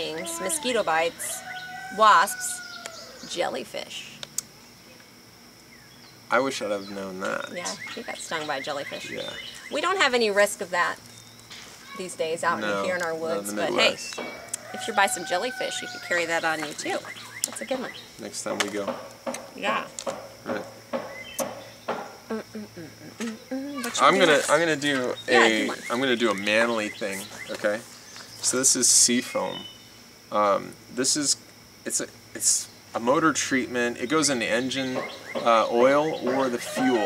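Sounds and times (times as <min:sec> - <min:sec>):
faint insect drone: 0:00.0 - 0:37.0.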